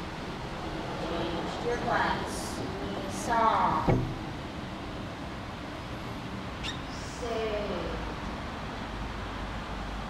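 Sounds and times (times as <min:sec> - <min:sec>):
short high squeak: 0:06.6 - 0:06.9.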